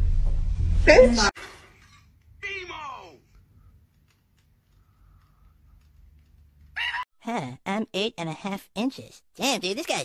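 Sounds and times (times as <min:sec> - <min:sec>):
woman shrieking: 0:06.8 - 0:07.0.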